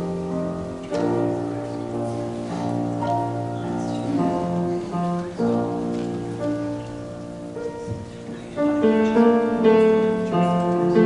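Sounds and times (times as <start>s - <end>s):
soft piano chords: 0.0s - 11.0s.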